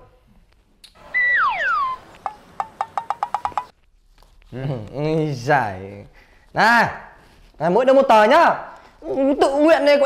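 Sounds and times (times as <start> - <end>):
whistling tone sliding down: 1.0 - 2.1.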